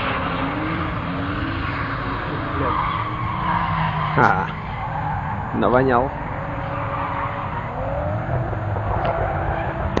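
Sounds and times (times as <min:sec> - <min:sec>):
car engine running hard: 0:00.0 - 0:10.0
tyres screeching: 0:00.0 - 0:10.0.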